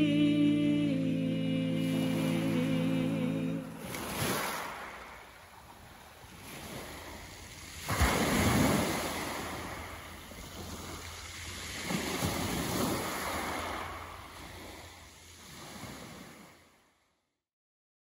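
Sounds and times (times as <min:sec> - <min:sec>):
sea waves washing on beach: 0:01.8 - 0:16.8.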